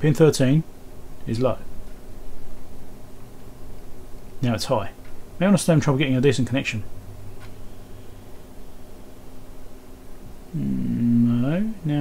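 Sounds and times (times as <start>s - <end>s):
low electrical hum: 0.0s - 12.0s
man humming mmm: 10.5s - 11.8s.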